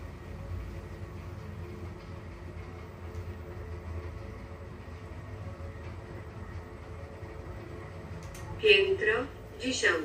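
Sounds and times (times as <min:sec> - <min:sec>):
elevator car rumbling: 0:00.0 - 0:10.0.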